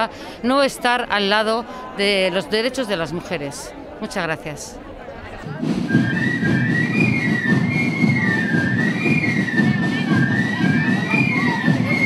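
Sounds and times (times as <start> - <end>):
fife band playing march: 5.4 - 12.0
low rumble of marchers: 5.4 - 12.0.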